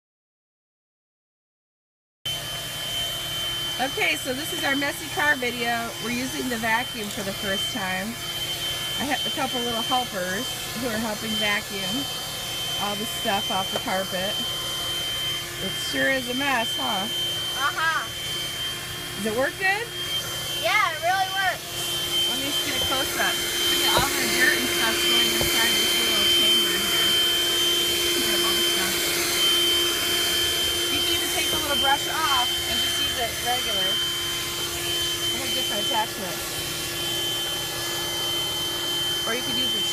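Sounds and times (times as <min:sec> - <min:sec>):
car vacuum cleaner running: 0:02.3 - 0:39.9.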